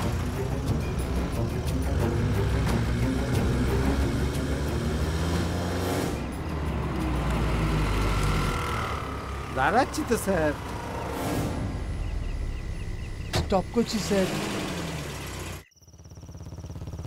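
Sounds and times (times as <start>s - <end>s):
dramatic background music: 0.0s - 14.3s
engines driving off: 0.0s - 17.0s.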